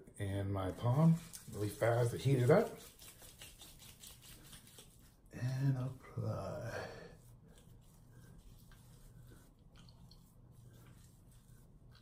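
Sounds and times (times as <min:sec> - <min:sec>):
palms rubbing together: 0:00.7 - 0:05.3, 0:05.9 - 0:12.0.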